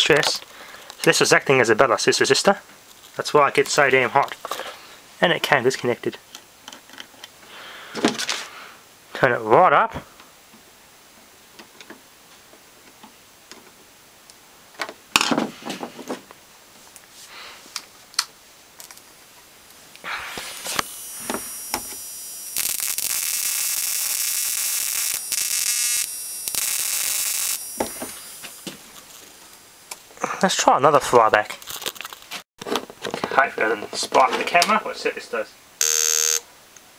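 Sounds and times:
high-voltage sparking whine and hiss: 0:20.1 - 0:29.2, 0:35.8 - 0:36.4.

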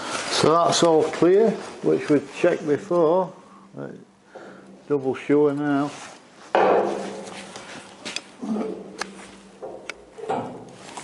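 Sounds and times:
metal tiller clunk: 0:08.6 - 0:10.8.

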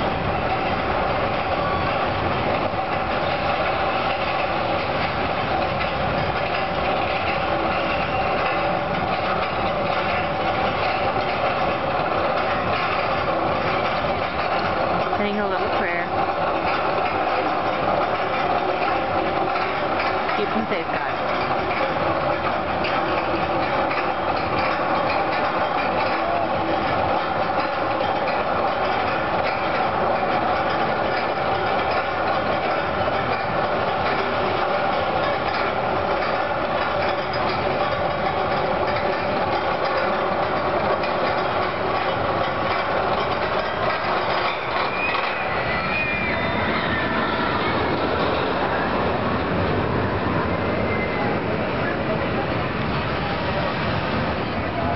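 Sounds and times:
constant mechanical hum: 0:00.0 - 0:54.9.

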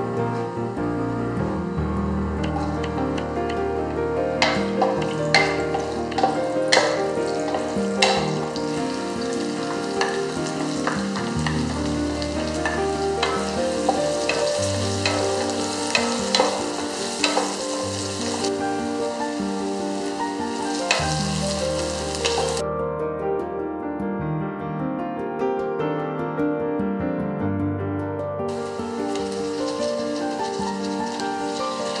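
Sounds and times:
onion and garlic sizzling in oil: 0:02.4 - 0:22.6, 0:28.5 - 0:32.0
spatula knocking and scraping pot: 0:04.4 - 0:08.7.

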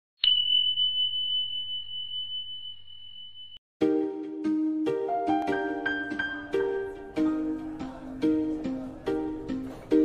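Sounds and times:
high bell ding: 0:00.2 - 0:03.6
plucked-string music: 0:03.8 - 0:10.0.

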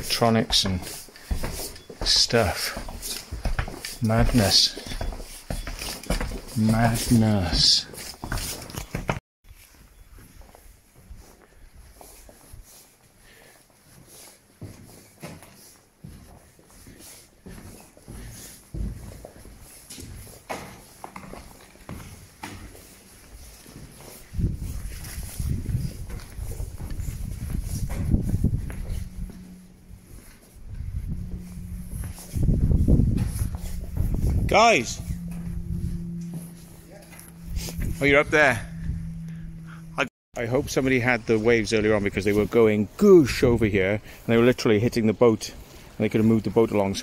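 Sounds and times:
footsteps: 0:00.0 - 0:47.0
steady low hum: 0:18.2 - 0:40.1
loud uneven low rumble: 0:24.4 - 0:40.1.

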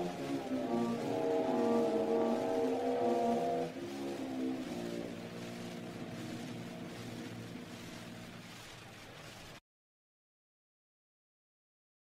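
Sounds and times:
instrumental accompaniment: 0:00.0 - 0:08.6
record surface hiss and crackle: 0:00.0 - 0:09.6.

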